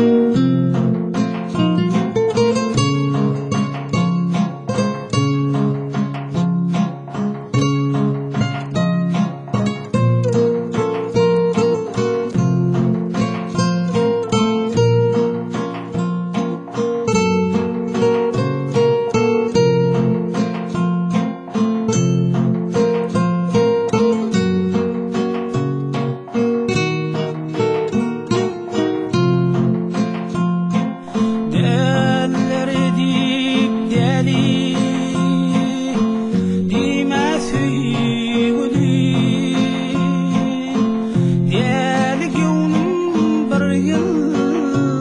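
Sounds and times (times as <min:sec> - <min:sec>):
plucked acoustic guitar melody: 0:00.0 - 0:45.0
strummed acoustic guitar: 0:00.0 - 0:45.0.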